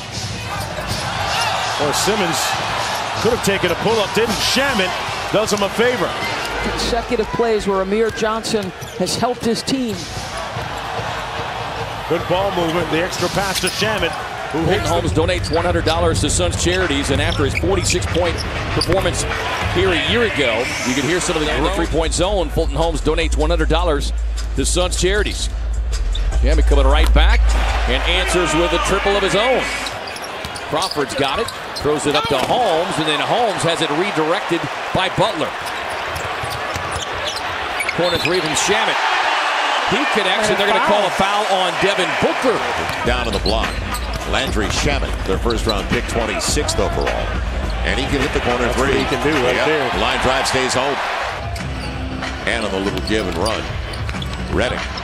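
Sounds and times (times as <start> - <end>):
arena crowd noise: 0.0 - 55.0
sneaker squeaks: 8.0 - 11.2, 13.5 - 14.4, 29.6 - 32.8, 35.5 - 38.6, 42.8 - 44.3, 51.4 - 55.0.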